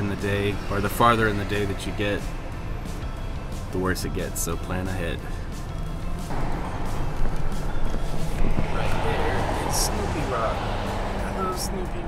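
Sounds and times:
music: 0.0s - 12.0s
van engine and road drone: 0.0s - 12.0s.

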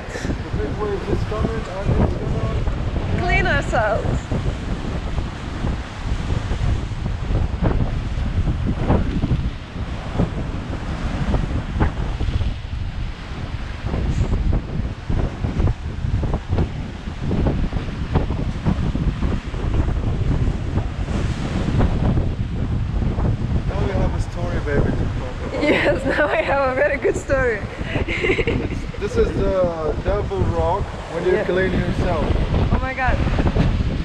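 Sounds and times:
waves breaking over rocks: 0.0s - 34.0s
wind buffeting microphone: 0.0s - 34.0s.

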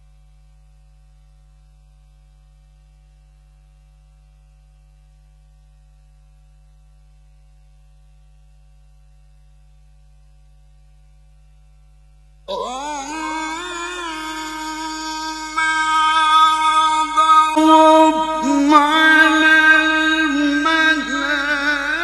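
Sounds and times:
electrical hum: 11.3s - 22.0s
man reciting melodically: 12.5s - 22.0s.

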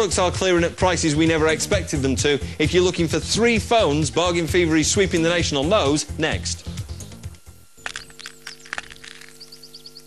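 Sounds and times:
cracking clicks: 7.8s - 9.9s.

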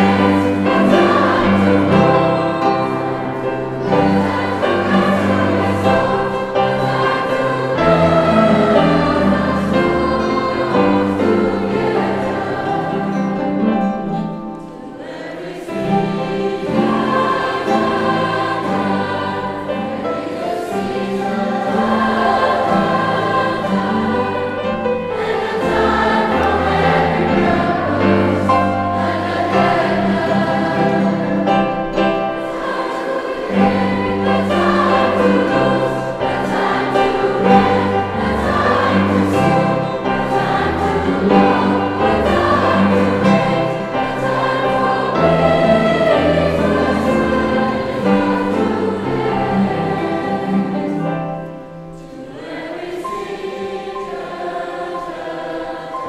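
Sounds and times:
children's choir singing: 0.0s - 56.0s
piano accompaniment: 0.0s - 56.0s.

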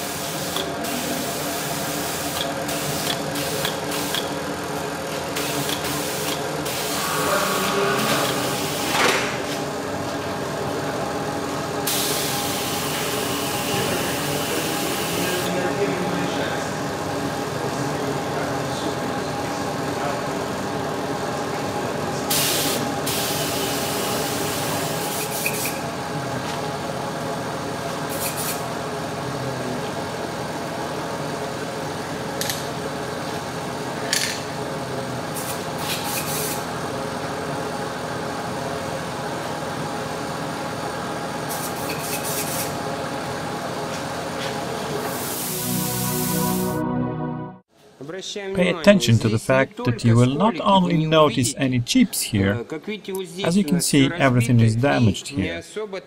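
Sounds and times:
steady motor hum: 0.0s - 45.4s.

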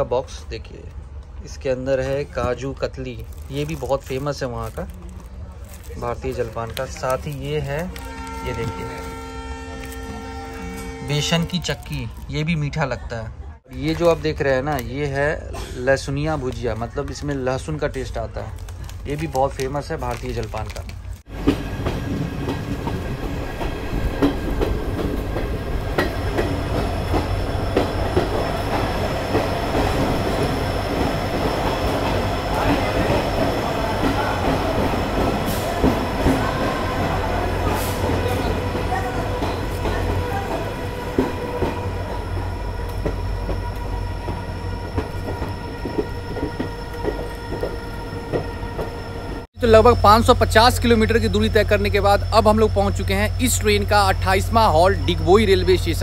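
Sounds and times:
train running on rails: 0.0s - 13.0s, 13.8s - 56.0s.

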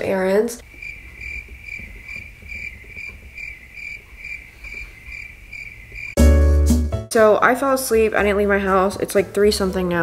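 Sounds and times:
cricket chirping: 0.6s - 6.2s.

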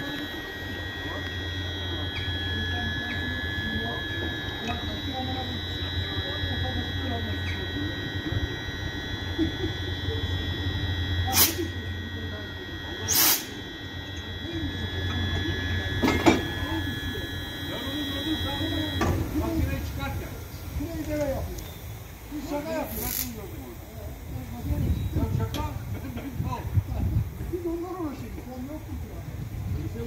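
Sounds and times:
locomotive electrical hum and whine: 0.0s - 30.0s.

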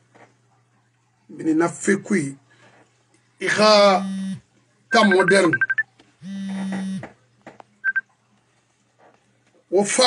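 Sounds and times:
faint steady hum: 0.0s - 10.0s
short high electronic beeps: 4.9s - 7.0s, 7.8s - 8.0s.

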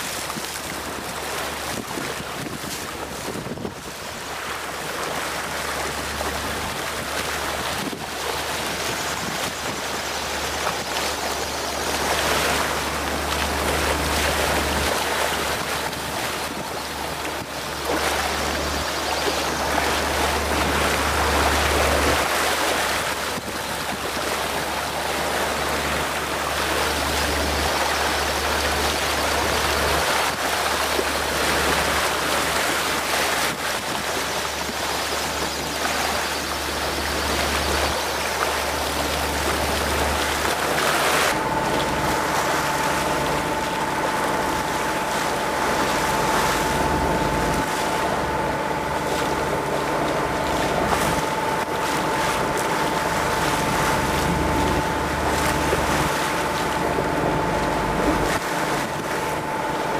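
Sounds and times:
steady engine hum: 0.0s - 59.9s
water splashing along boat hull: 0.0s - 59.9s
wind: 0.0s - 59.9s.

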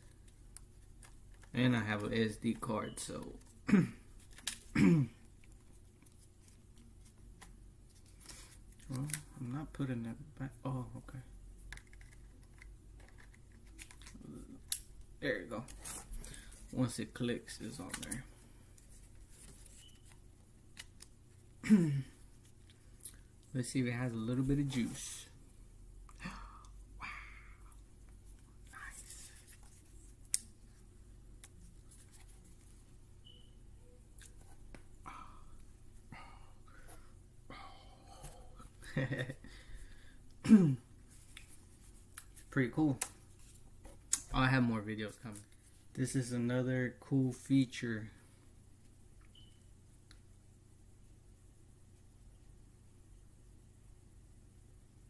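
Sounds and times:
man clearing throat: 3.6s - 4.1s, 4.7s - 5.2s, 21.6s - 22.2s, 40.4s - 40.9s.

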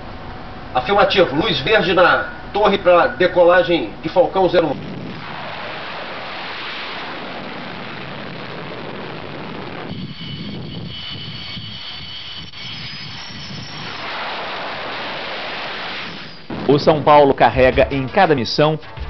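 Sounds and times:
jet engine rush: 0.0s - 18.0s
high jet whine: 0.0s - 19.0s.

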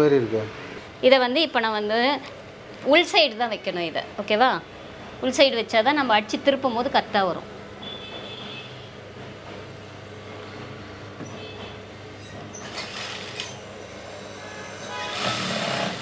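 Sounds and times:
sewing machine stitching: 12.6s - 13.6s, 15.0s - 16.0s.

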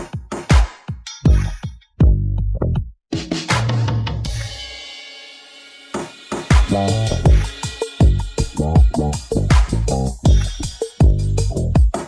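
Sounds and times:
drum beat: 0.0s - 2.2s, 3.1s - 12.0s
sharp drum hit: 3.5s - 8.4s
cymbal crash: 4.3s - 9.5s
low bass note: 6.7s - 10.5s.

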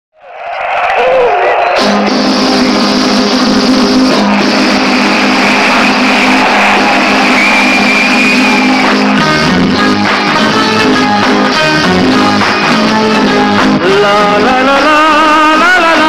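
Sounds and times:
rhythmic plucked strings: 1.8s - 16.0s.

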